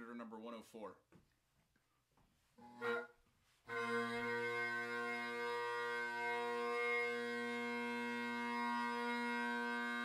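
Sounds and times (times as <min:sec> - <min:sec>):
bagpipe drones: 0:02.6 - 0:10.0.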